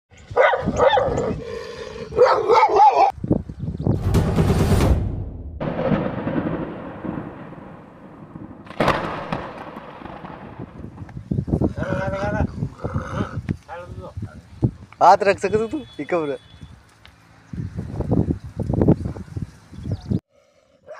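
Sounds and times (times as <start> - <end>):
dog barking: 0.4 - 1.4, 2.2 - 3.1.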